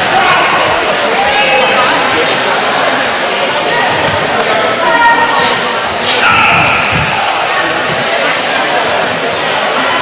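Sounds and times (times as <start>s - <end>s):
overlapping voices echoing in hall: 0.0s - 10.0s.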